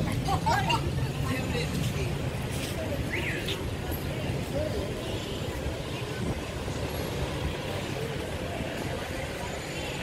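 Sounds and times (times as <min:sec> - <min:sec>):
faint voices of passers-by: 0:00.0 - 0:10.0
street traffic: 0:00.0 - 0:10.0.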